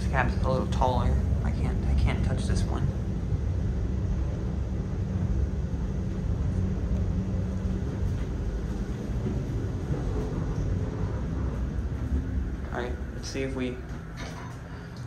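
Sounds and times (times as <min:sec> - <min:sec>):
elevator low rumble: 0:00.0 - 0:15.0
faint hum: 0:00.0 - 0:15.0.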